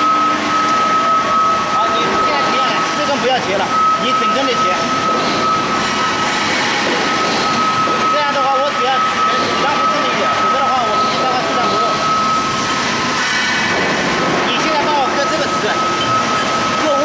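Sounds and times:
machine shop din: 0:00.0 - 0:17.0
band saw cutting metal tube: 0:02.1 - 0:17.0.

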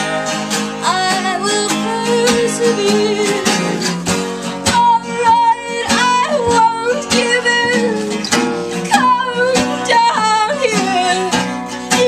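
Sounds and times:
acoustic guitar strumming: 0:00.0 - 0:12.0
person singing: 0:00.0 - 0:12.0.

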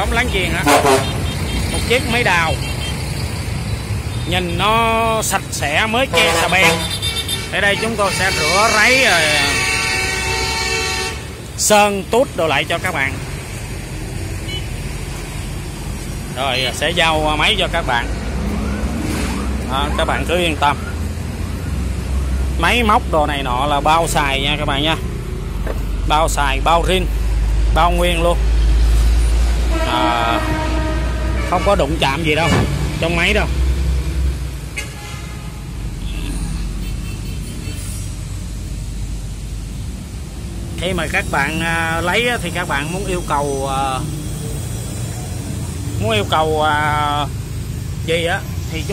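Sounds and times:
low rumble of traffic: 0:00.0 - 0:48.9.

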